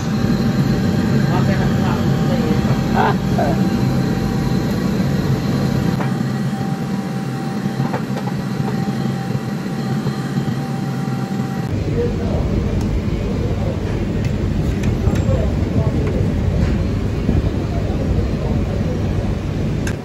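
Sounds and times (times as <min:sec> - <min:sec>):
gas wok range rumbling: 0:00.0 - 0:20.0
kitchen ventilation running: 0:00.0 - 0:20.0.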